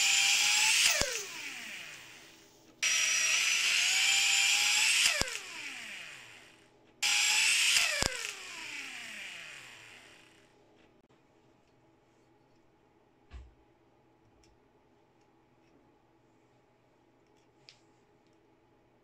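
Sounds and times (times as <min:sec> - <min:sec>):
cordless screwdriver motor whining: 0:00.0 - 0:10.4.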